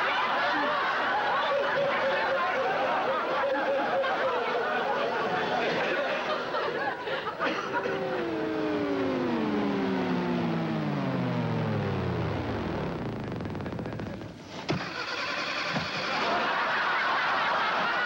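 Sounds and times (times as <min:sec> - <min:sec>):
steady whirring hum: 0:06.9 - 0:15.2
space shuttle engine winding down: 0:07.4 - 0:16.4.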